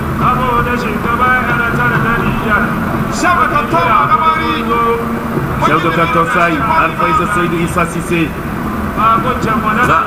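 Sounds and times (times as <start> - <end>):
large crowd noise: 0.0 - 10.0.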